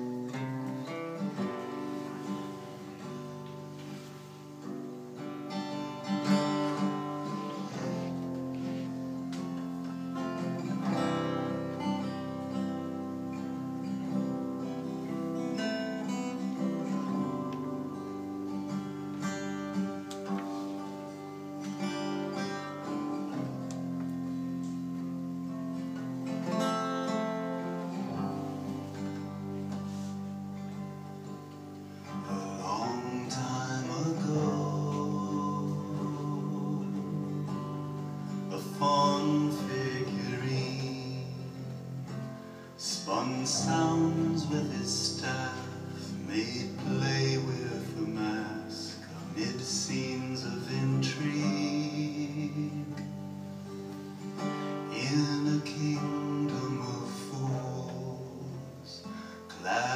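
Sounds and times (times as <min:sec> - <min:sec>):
acoustic guitar folk tune: 0:00.0 - 0:59.9.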